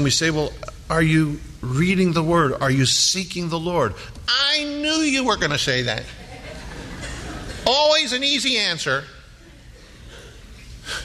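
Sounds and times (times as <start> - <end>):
sharp intake of breath: 10.1 - 11.0.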